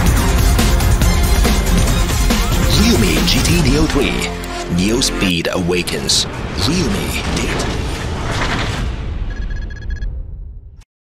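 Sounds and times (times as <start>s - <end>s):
rapid high electronic beeps: 9.3s - 10.1s.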